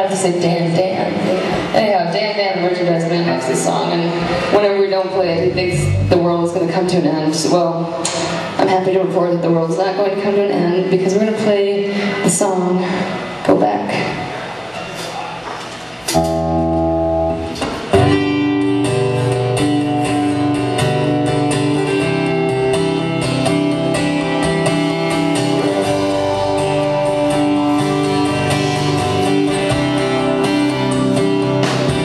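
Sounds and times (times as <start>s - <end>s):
guitar chord ringing: 5.1s - 6.7s, 16.1s - 32.0s
rock band playing: 5.2s - 6.7s, 16.1s - 32.0s.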